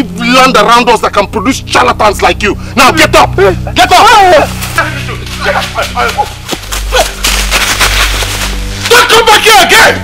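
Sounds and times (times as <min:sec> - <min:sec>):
low music drone: 0:00.0 - 0:10.0
sharp cracks: 0:05.7 - 0:09.0.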